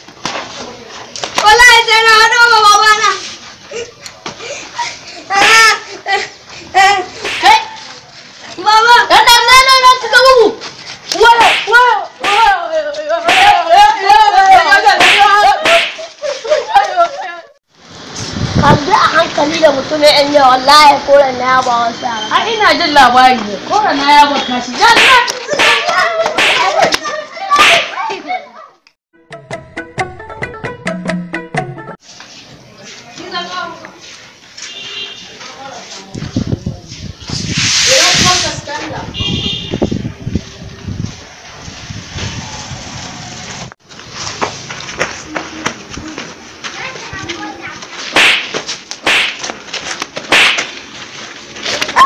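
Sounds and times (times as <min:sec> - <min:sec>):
voices shouting and yelling: 0:01.4 - 0:17.6
loud sharp hits: 0:07.2 - 0:07.7, 0:11.3 - 0:12.5, 0:13.3 - 0:13.6, 0:15.0 - 0:16.0, 0:24.8 - 0:26.8, 0:48.1 - 0:49.6, 0:50.3 - 0:50.8.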